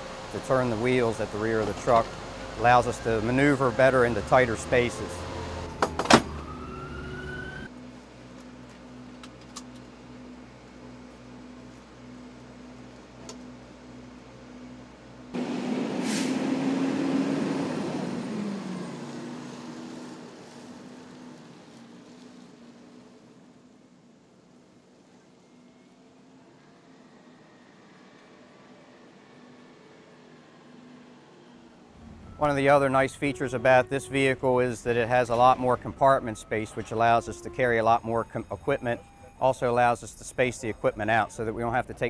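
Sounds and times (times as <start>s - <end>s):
diesel truck engine idling: 0.0s - 6.6s, 31.8s - 42.0s
truck driving past: 0.0s - 23.9s, 24.5s - 42.0s
short air hiss: 15.9s - 16.5s.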